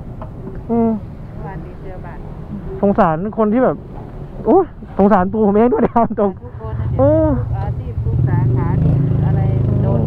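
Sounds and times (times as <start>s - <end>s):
voices: 0.5s - 10.0s
vehicle engine idling: 6.3s - 10.0s.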